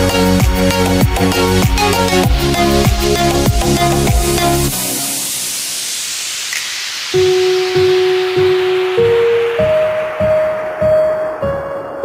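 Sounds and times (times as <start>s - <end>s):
falling white-noise sweep: 0.6s - 12.0s.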